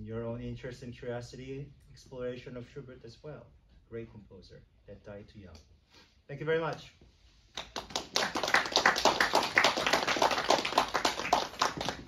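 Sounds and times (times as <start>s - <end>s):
audience applauding: 7.6s - 12.0s.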